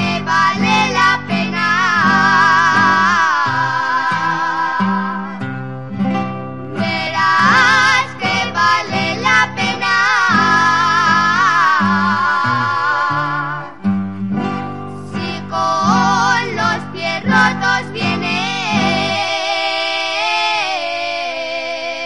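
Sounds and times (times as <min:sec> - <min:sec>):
person singing with vibrato: 0:00.0 - 0:05.6, 0:06.6 - 0:13.9, 0:14.9 - 0:22.0
accordion: 0:00.0 - 0:22.0
guitars: 0:00.0 - 0:22.0.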